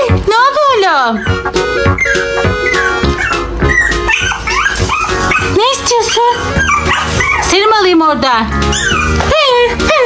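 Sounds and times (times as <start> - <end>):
background music: 0.0 - 10.0
small dog whining and yipping: 1.2 - 7.7, 8.7 - 10.0.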